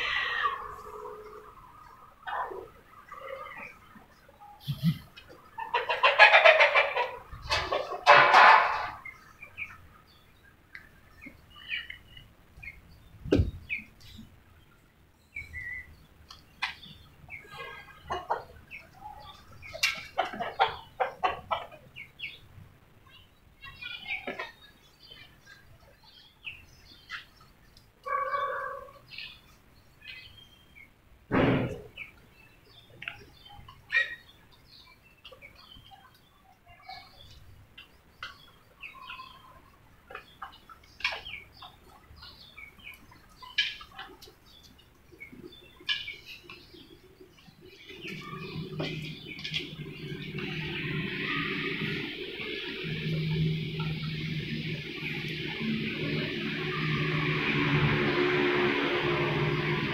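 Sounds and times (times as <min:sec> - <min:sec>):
chicken calling: 0:00.0 - 0:03.8, 0:04.6 - 0:09.8, 0:28.0 - 0:29.4, 0:45.2 - 0:59.7
birds chirping and calling: 0:00.0 - 0:31.0, 0:31.7 - 0:57.4.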